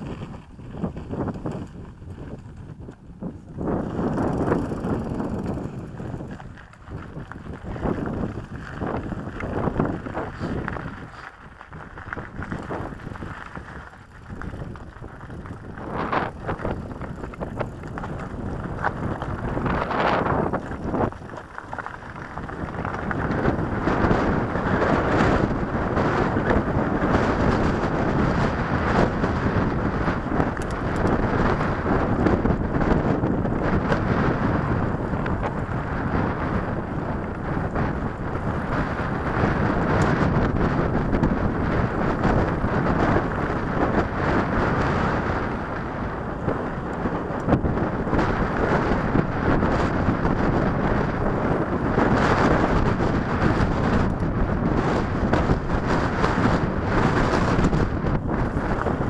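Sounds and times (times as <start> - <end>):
bike knocks and rattles: 0.0 - 59.0
tyres crunching on stony trail: 0.0 - 59.0
wind rushing over microphone: 0.0 - 59.0.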